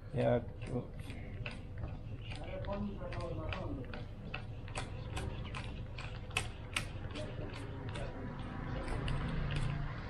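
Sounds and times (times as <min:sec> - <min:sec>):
banknotes flicked while counting: 0:00.2 - 0:10.0.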